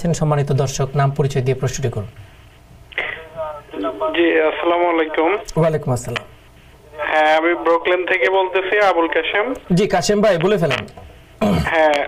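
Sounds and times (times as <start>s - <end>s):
voice over telephone line: 3.0s - 6.2s, 6.9s - 10.9s.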